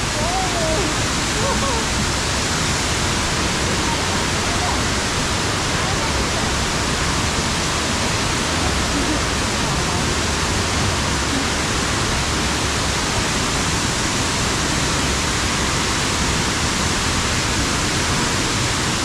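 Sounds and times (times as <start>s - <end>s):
waterfall rushing: 0.0s - 19.0s.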